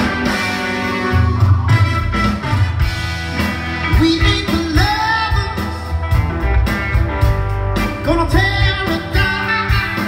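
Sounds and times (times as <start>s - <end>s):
bass guitar: 0.0s - 10.0s
drums: 0.0s - 10.0s
electric guitars: 0.0s - 10.0s
man singing: 3.8s - 6.0s, 7.9s - 10.0s.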